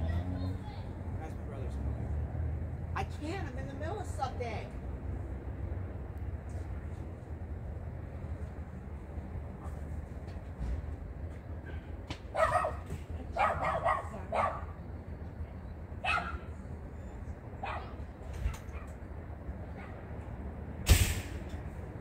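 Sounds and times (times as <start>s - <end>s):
dog barking: 12.3s - 14.8s, 16.0s - 16.5s, 17.6s - 19.0s, 19.7s - 20.1s
sharp knock: 20.9s - 21.4s.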